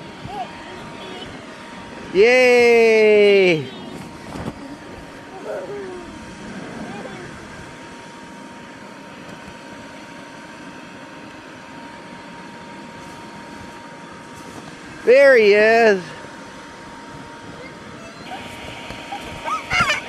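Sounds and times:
child's voice: 0.3 - 1.4, 6.8 - 7.4, 17.6 - 18.4
electric blower whirring: 18.2 - 20.0.

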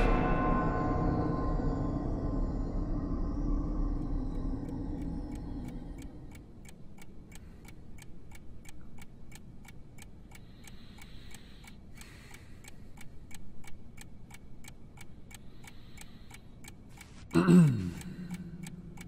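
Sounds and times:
faint low drone: 0.0 - 6.7
clock ticking: 3.5 - 19.0.

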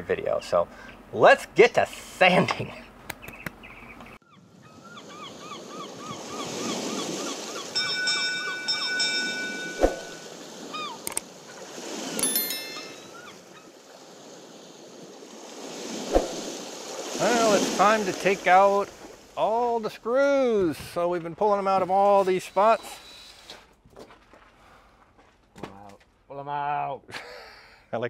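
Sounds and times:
ocean waves washing: 4.5 - 20.6
held chime tones: 7.7 - 11.0, 12.2 - 13.4
bell-like ding: 7.8 - 10.4, 12.2 - 13.4.

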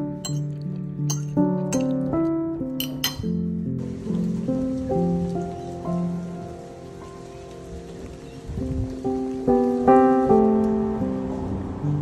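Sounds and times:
music of slow held notes: 0.0 - 12.0
light rain falling: 2.9 - 12.0.

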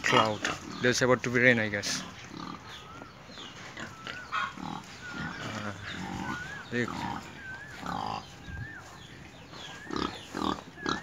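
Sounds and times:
pigs grunting: 0.0 - 1.0, 1.8 - 2.9, 3.6 - 8.4, 9.7 - 11.0.

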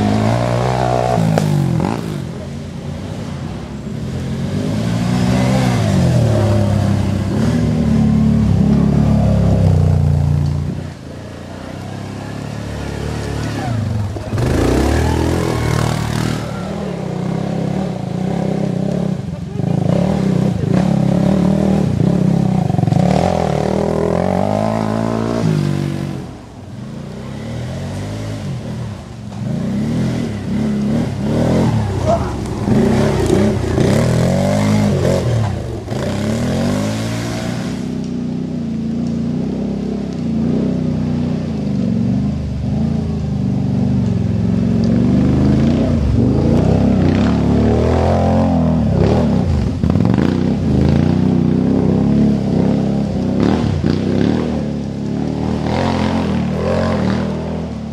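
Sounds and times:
quad bike engines revving: 0.0 - 57.9.

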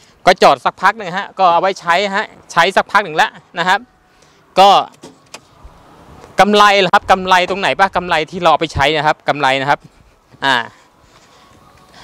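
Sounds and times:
person speaking: 6.4 - 10.9.

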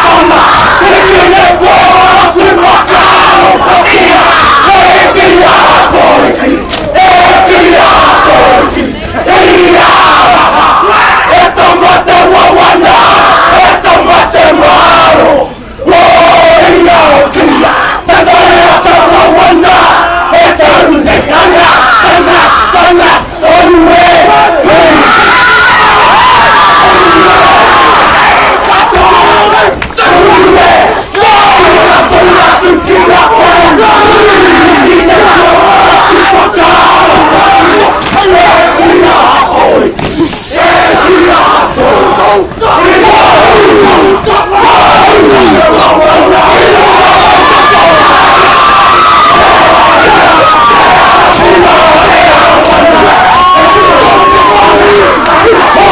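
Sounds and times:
group shouted chanting: 0.0 - 55.9
sharp slaps: 6.7 - 6.9, 38.0 - 38.2.

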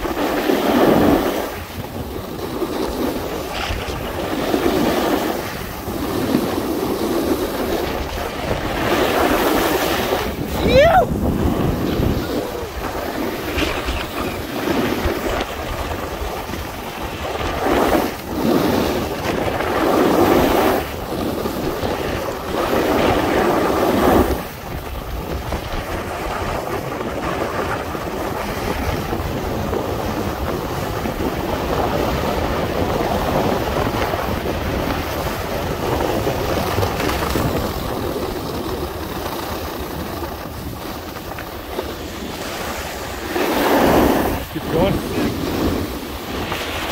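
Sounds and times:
skis scraping on snow: 0.0 - 46.9
wind buffeting microphone: 0.0 - 46.9.

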